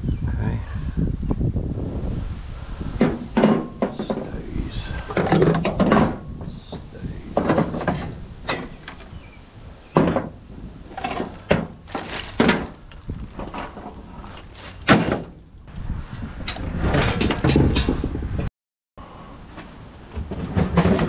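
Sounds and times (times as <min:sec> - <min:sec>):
metal clattering and scraping: 0:02.9 - 0:15.6, 0:16.5 - 0:18.2, 0:19.5 - 0:21.0
scrap metal clanking: 0:03.0 - 0:15.4, 0:19.5 - 0:21.0.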